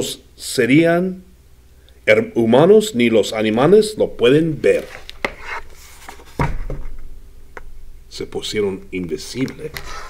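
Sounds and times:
book pages turning: 0:04.6 - 0:06.4
book knocking on tabletop: 0:06.3 - 0:07.0.

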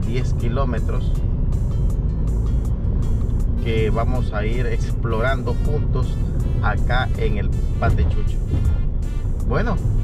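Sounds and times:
car cabin road and engine noise: 0:00.0 - 0:10.0
music playing: 0:00.0 - 0:10.0.

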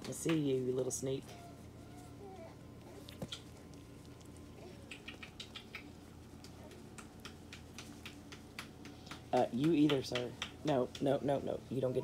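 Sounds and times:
puppies squeaking and whimpering: 0:01.2 - 0:07.0.

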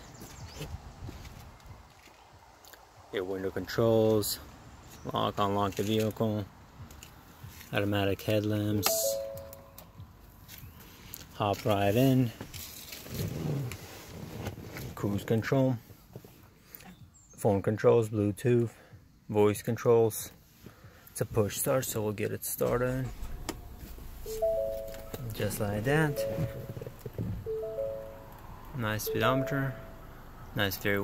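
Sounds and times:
two-note electronic warning chime: 0:08.8 - 0:09.9, 0:24.2 - 0:30.2
start button click: 0:24.2 - 0:28.4.

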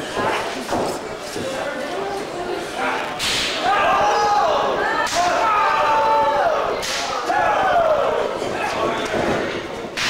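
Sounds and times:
crowd shouting: 0:02.8 - 0:09.0.

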